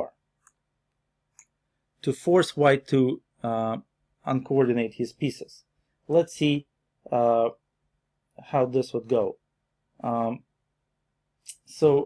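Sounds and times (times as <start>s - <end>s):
computer mouse clicks: 0.4s - 1.6s.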